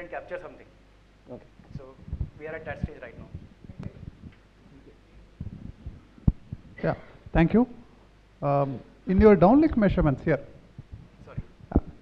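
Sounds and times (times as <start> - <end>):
soft low thumps: 1.3 - 8.2, 9.1 - 12.0.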